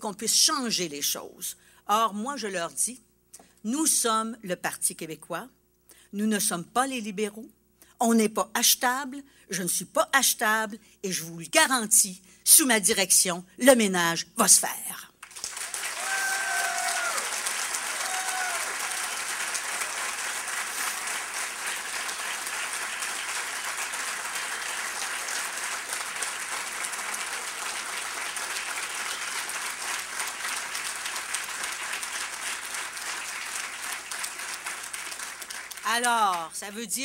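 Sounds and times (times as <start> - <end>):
crowd applauding: 15.2 - 36.5.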